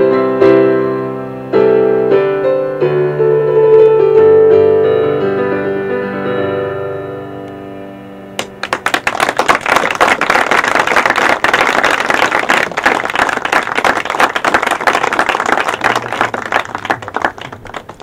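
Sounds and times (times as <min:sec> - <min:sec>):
piano chord: 0:00.0 - 0:08.7
audience applauding: 0:08.4 - 0:18.0.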